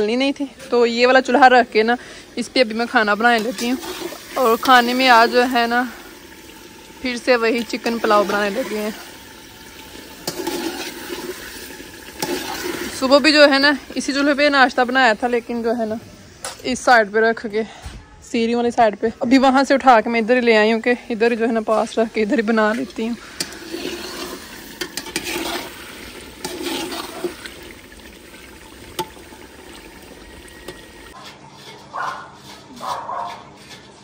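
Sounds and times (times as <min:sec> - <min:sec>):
curry frying and bubbling in pot: 0:00.0 - 0:17.2, 0:19.2 - 0:34.0
ladle clicking against pot: 0:24.8 - 0:25.5.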